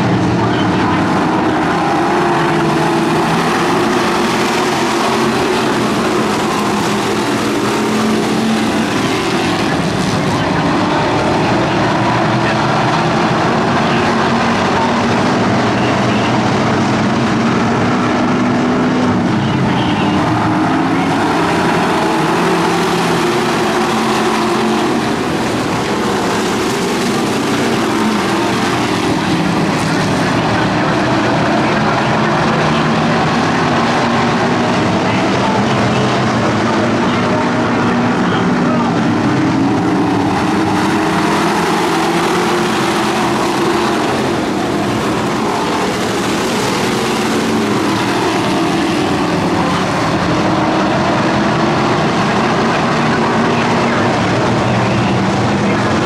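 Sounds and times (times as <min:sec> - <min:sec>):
race car engines roaring: 0:00.0 - 0:56.0.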